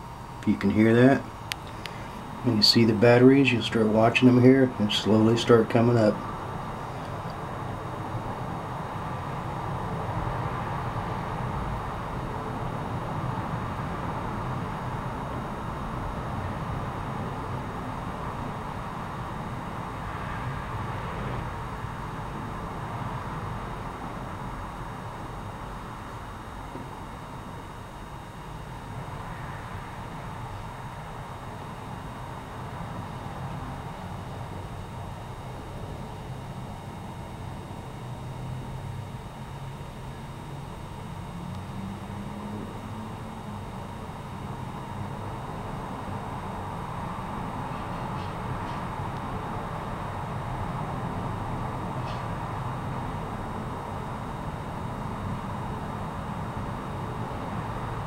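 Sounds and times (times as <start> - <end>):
charger coil humming: 0.0 - 58.0.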